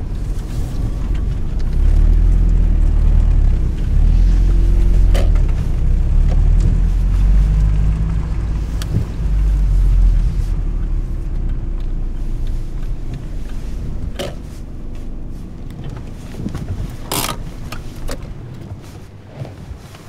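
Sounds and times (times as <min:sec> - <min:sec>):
car driving rumble inside cabin: 0:00.0 - 0:20.0.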